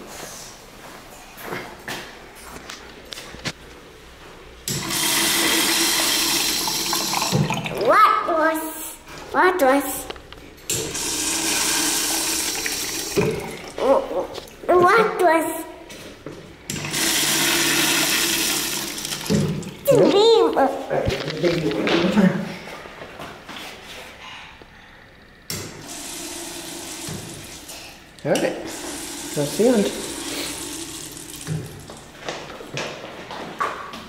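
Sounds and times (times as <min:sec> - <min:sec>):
urinal flushing: 0:04.7 - 0:08.0, 0:10.7 - 0:14.6, 0:16.7 - 0:20.0, 0:25.7 - 0:32.2.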